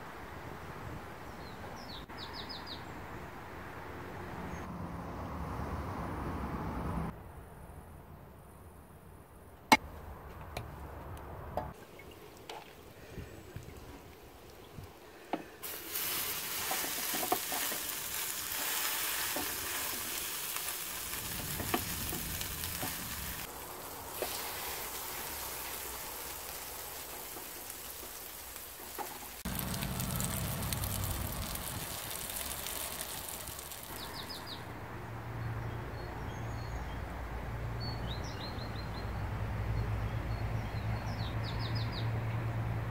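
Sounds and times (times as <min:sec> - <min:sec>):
fritters sizzling in a frying pan: 0:15.6 - 0:34.0.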